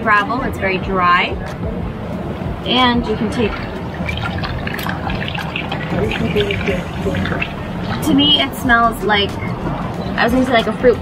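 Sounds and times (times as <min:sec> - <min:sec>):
water dripping and trickling: 0:03.0 - 0:08.9.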